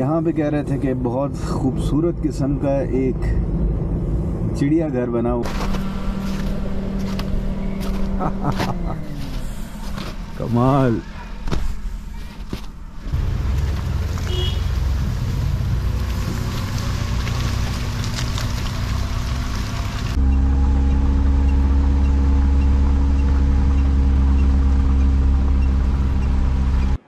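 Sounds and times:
car driving on road: 0:00.0 - 0:27.0
engine drone: 0:05.4 - 0:27.0.

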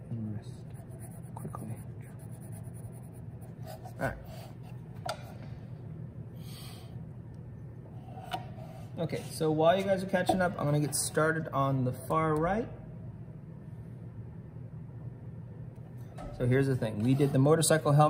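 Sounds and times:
pencil scratching on paper: 0:00.7 - 0:04.6, 0:17.0 - 0:17.7.

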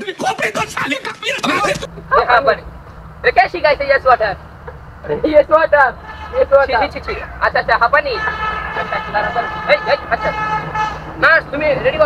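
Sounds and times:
steady horn tone: 0:05.9 - 0:12.0.

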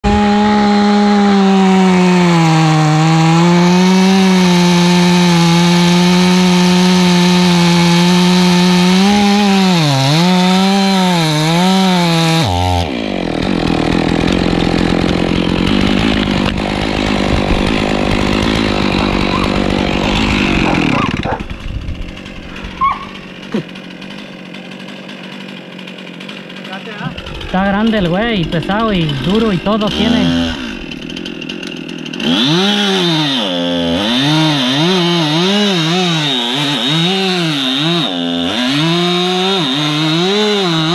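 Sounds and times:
chainsaw cutting wood: 0:00.0 - 0:40.9.

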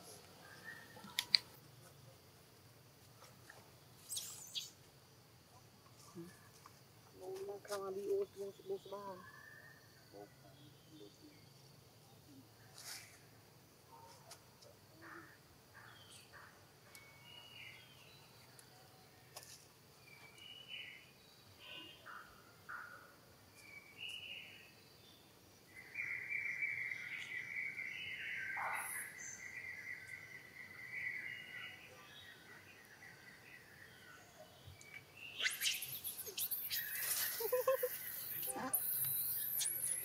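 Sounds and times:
bird chirps: 0:04.0 - 0:04.8, 0:25.8 - 0:40.0
high bird trill: 0:35.4 - 0:40.0
high-pitched squeaks and clicks: 0:35.4 - 0:40.0.

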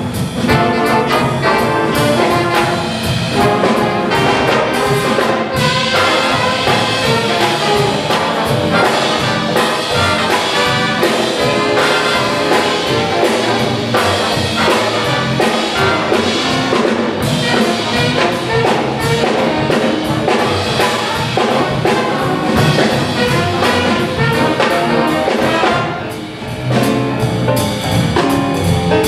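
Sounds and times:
jazz big band playing: 0:00.0 - 0:29.0.

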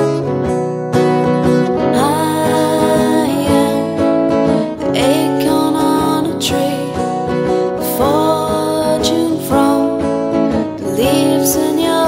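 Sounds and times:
strummed acoustic guitar: 0:00.0 - 0:12.0
woman singing: 0:01.1 - 0:12.0.

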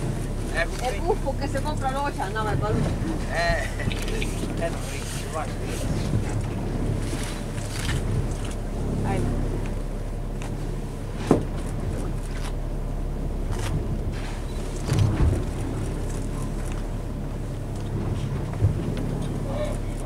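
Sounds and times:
boat engine running: 0:00.0 - 0:20.0
water noise: 0:00.0 - 0:20.0
wind: 0:00.0 - 0:20.0.

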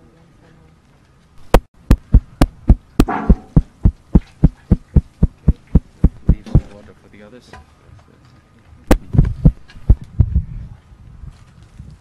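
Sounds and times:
rapid dull knocks: 0:01.4 - 0:06.8, 0:08.9 - 0:10.3.

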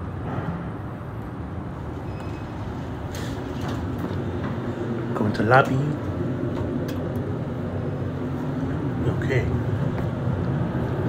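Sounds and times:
steady low rumble: 0:00.0 - 0:11.0
elevator doors sliding open: 0:01.7 - 0:09.0.

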